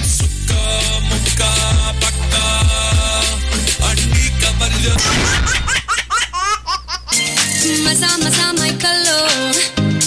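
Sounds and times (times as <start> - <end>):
music with steady bass: 0.0 - 5.6, 7.1 - 10.0
high-pitched recorded laughs: 5.0 - 7.3.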